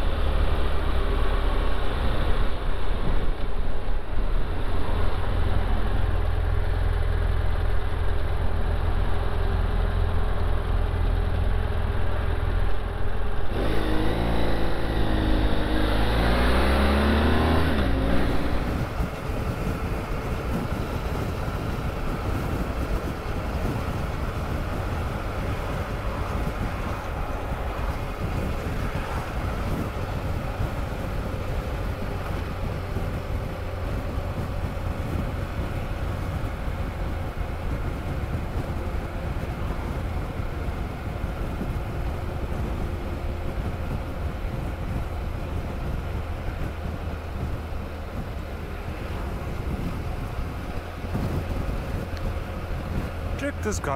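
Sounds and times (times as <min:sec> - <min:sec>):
wind noise at road speed: 0:00.0 - 0:53.9
motorcycle engine accelerating: 0:05.0 - 0:26.7.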